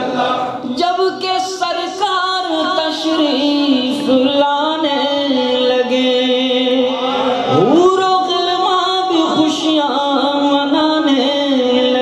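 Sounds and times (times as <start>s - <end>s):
man singing over loudspeaker: 0.0s - 12.0s.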